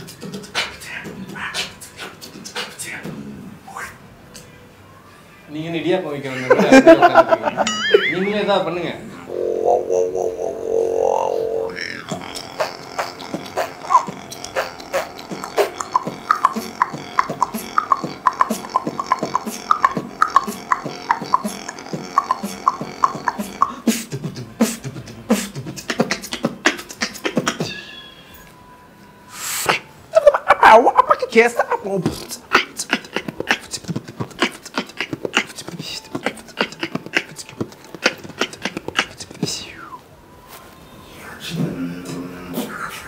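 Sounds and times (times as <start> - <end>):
beatboxing clicks and snare hits: 0.0 - 3.1, 12.2 - 27.7, 32.1 - 39.6
beatboxing droning bass note: 9.3 - 27.9, 32.2 - 39.9
hissing cymbal-like mouth sound: 29.3 - 29.9.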